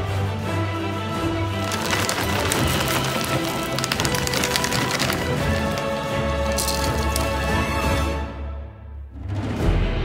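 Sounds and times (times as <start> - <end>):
background music: 0.0 - 10.0
seeds pouring into a bowl: 1.6 - 7.8.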